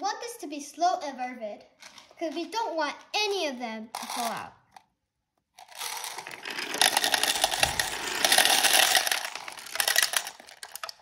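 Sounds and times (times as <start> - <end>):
beads clattering into plastic cups: 3.2 - 4.6, 5.6 - 11.0
beads rattling down ramps: 4.0 - 4.5, 5.6 - 11.0.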